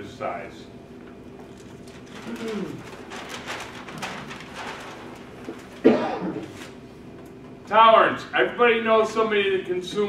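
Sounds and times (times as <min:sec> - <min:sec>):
man coughing: 0:05.8 - 0:06.5.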